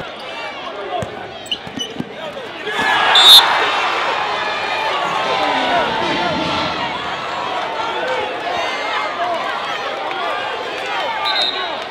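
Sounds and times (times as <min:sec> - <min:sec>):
chatter of voices: 0:03.5 - 0:11.2.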